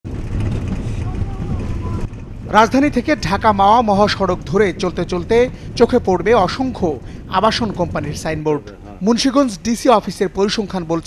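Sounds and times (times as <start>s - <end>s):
vehicle engine and tyres rumbling: 0.0s - 11.0s.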